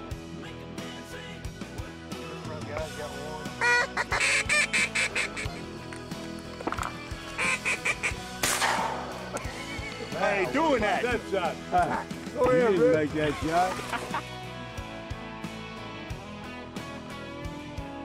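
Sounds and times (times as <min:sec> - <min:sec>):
background music: 0:00.0 - 0:18.0
nasal duck calls: 0:03.6 - 0:05.7, 0:07.4 - 0:08.3.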